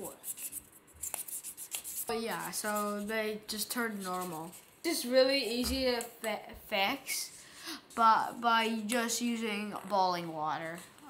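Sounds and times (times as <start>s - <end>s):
scratchy handling of plastic balls: 0.0s - 6.0s.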